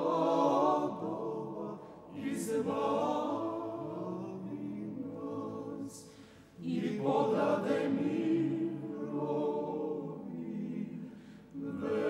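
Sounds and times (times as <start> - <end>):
choir chanting a cappella: 0.0 - 12.0.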